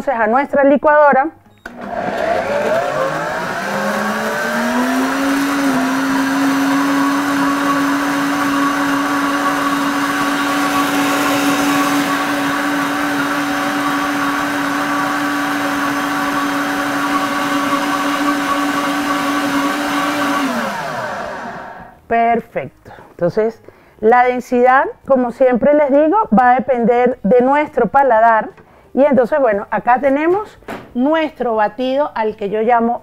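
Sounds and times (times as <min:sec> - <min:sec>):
blender motor running: 0:01.6 - 0:22.0.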